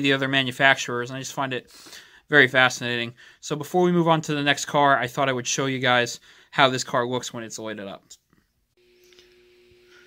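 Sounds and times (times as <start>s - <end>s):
faint electrical hum: 8.8s - 10.0s.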